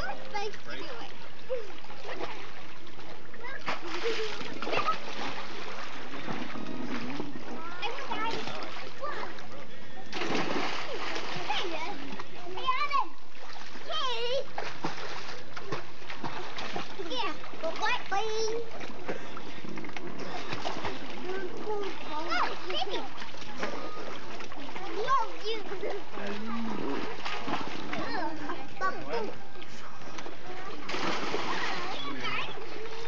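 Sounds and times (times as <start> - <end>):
water splashing in pool: 0.0 - 33.0
children calling out: 21.4 - 24.2, 30.7 - 33.0.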